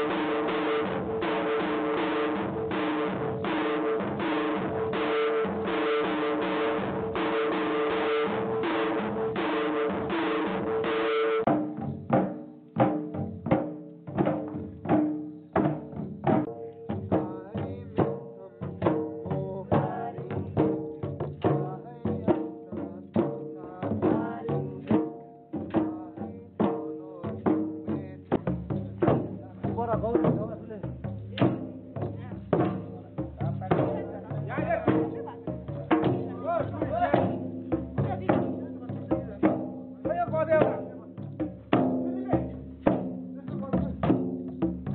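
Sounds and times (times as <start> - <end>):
barrel drums beating: 0.0 - 44.9.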